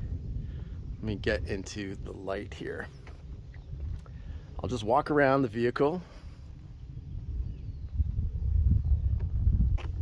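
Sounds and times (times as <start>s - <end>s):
gusty wind rumble: 0.0s - 10.0s.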